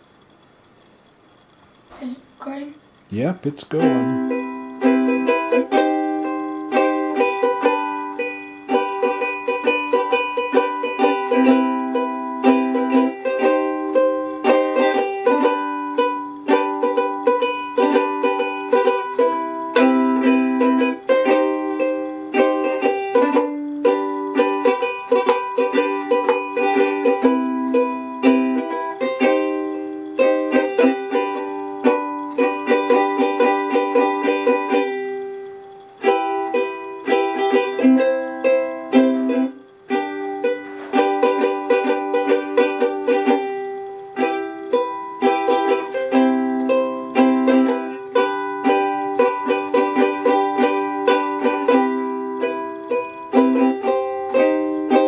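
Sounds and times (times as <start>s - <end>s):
ukulele strumming: 3.4s - 55.0s.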